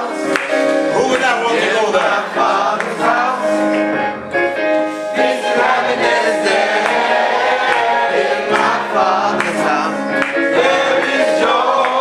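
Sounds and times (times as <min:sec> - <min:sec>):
gospel choir singing a hymn: 0:00.0 - 0:04.2, 0:04.8 - 0:12.0.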